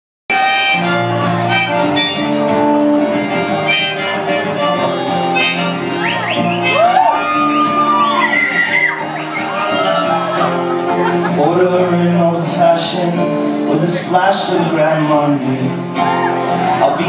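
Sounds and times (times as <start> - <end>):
harmonica long held notes: 0.3 - 11.0
acoustic guitar strumming: 0.3 - 17.0
audience whooping: 5.4 - 11.2, 16.0 - 17.0.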